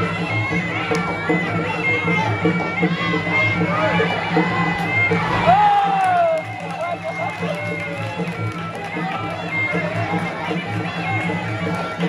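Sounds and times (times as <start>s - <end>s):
reedy shawm melody: 0.0s - 12.0s.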